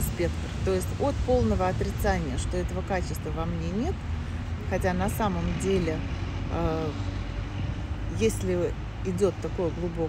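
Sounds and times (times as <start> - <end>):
low rumble of street traffic: 0.0 - 10.0.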